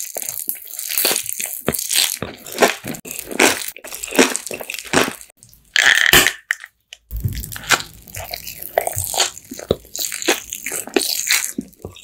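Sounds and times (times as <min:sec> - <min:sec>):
biting and chewing: 0:00.0 - 0:06.3, 0:07.1 - 0:12.0.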